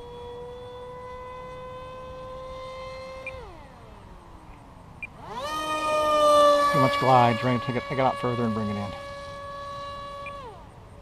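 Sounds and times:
model plane electric motor whining: 0.0s - 11.0s.

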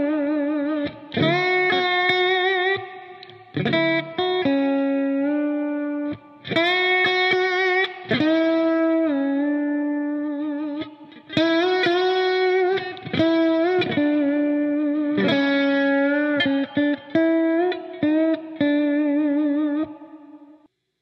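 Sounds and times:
lap steel guitar melody: 0.0s - 20.6s.

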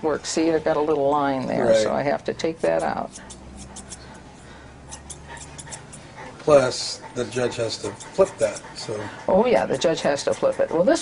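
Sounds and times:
scissors snipping: 2.6s - 4.2s, 4.9s - 6.0s.

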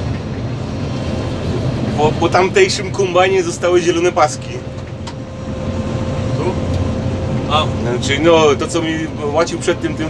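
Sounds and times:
combine harvester drone: 0.0s - 10.0s.

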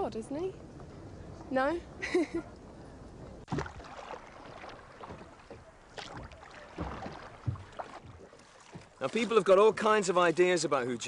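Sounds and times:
water lapping against boat: 3.2s - 10.2s
knocks and splashes against hull: 3.4s - 9.9s.

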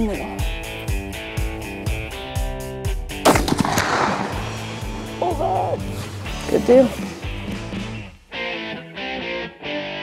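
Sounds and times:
background music with steady beat: 0.0s - 9.4s
gunshot ringing: 3.2s - 5.0s.

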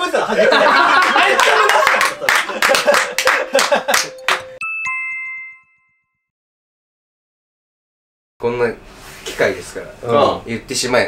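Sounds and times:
laughter: 0.1s - 4.2s
two-note electronic chime: 4.1s - 6.3s.

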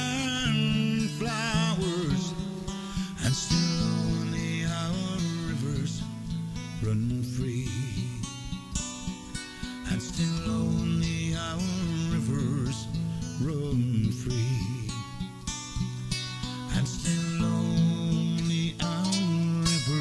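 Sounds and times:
man singing a ballad: 0.0s - 15.5s, 16.1s - 20.0s
strummed acoustic guitar: 0.0s - 20.0s.

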